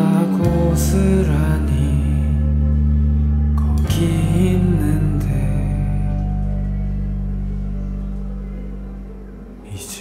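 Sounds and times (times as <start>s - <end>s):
sustained low chord: 0.0s - 10.0s.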